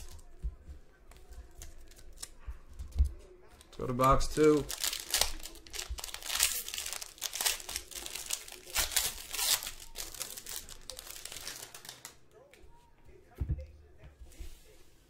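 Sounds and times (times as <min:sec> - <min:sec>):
foil wrapper tearing and crinkling: 0:03.7 - 0:12.2.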